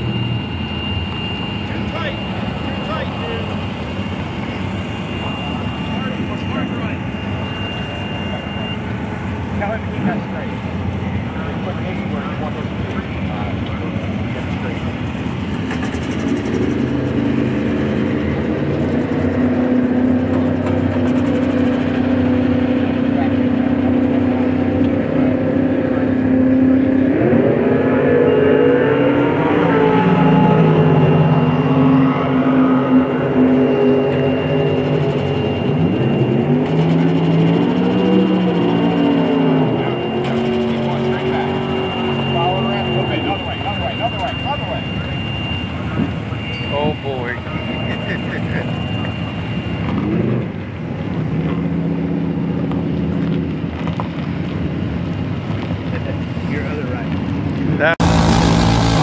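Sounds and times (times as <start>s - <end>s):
thin high whine: 0.0s - 26.4s, 27.8s - 50.2s, 57.9s - 59.0s
golf cart motor running: 58.0s - 59.0s.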